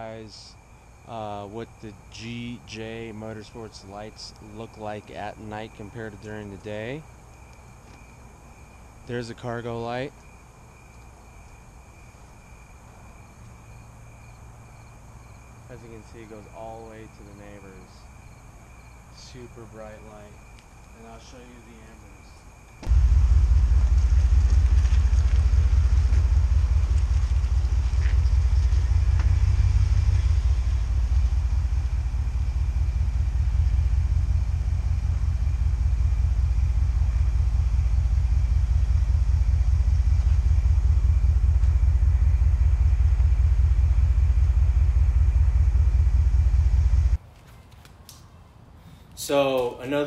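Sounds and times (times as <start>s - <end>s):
truck engine idling: 22.8s - 47.2s.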